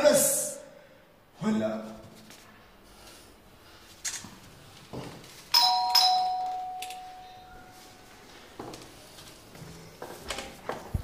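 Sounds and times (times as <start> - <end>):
two-note doorbell chime: 5.6 - 7.9.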